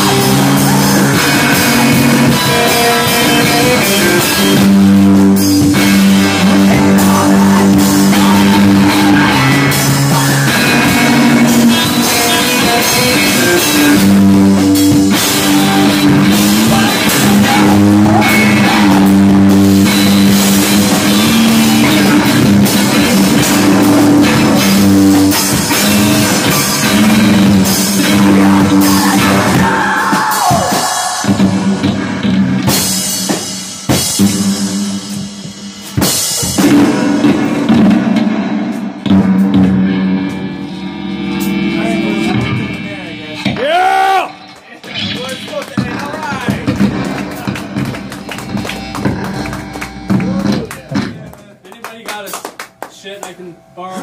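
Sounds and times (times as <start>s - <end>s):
live rock band playing: 0.0s - 54.0s.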